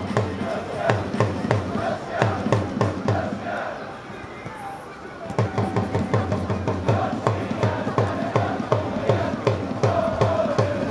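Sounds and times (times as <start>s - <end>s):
drum beaten in steady rhythm: 0.0s - 3.4s, 5.3s - 10.9s
crowd chanting: 0.0s - 10.9s.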